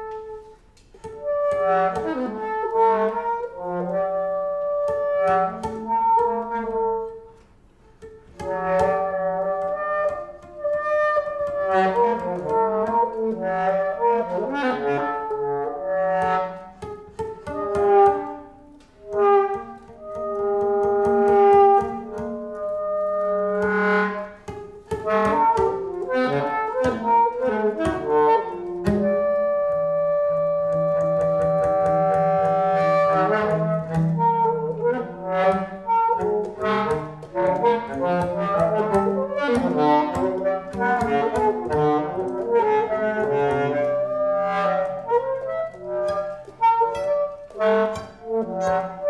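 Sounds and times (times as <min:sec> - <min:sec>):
plucked string instrument: 0:00.0 - 0:49.0
saxophone: 0:00.0 - 0:49.0.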